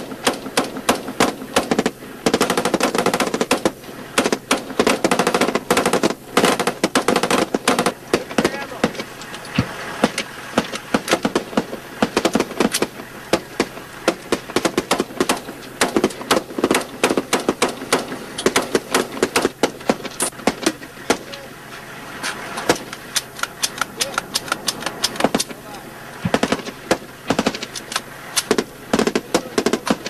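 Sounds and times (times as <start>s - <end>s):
rapid rifle fire: 0.0s - 21.5s, 22.2s - 30.0s.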